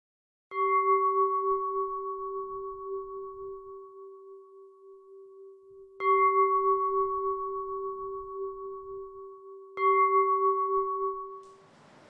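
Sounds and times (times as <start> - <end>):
bowl bell ringing: 0.5 - 11.8.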